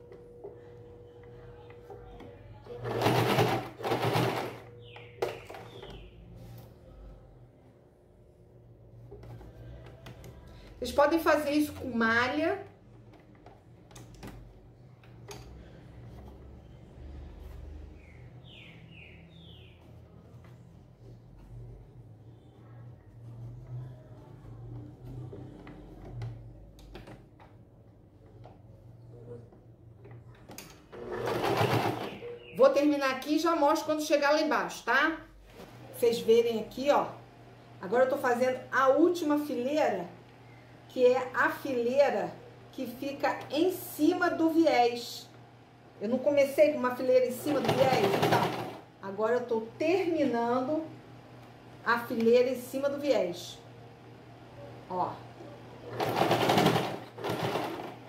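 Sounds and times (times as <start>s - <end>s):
low steady hum: 0.0s - 31.0s
sewing machine stitching: 2.8s - 4.7s, 30.9s - 32.3s, 47.5s - 48.8s, 55.8s - 58.0s.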